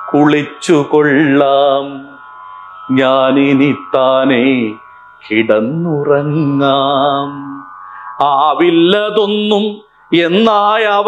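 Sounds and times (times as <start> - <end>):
person singing: 0.0 - 2.3, 2.9 - 11.0
steady drone: 0.0 - 11.0.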